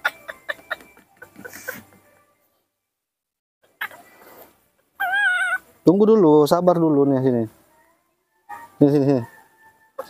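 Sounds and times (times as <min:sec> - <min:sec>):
baby monkey crying: 0:05.0 - 0:05.7.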